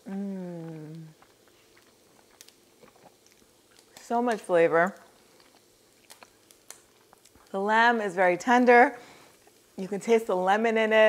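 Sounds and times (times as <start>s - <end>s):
person humming mm: 0.0s - 1.2s
chewing and mouth clicks: 0.6s - 4.0s, 4.9s - 7.5s.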